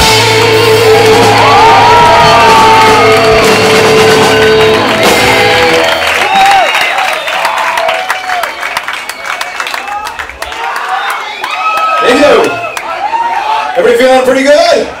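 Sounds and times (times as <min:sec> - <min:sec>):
distorted guitars and bass chord: 0:00.0 - 0:05.9
crowd shouting and clapping: 0:00.0 - 0:15.0.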